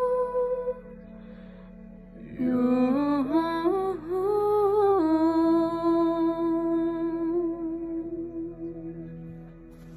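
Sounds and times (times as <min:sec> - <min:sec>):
soft backing tones: 0:00.0 - 0:09.9.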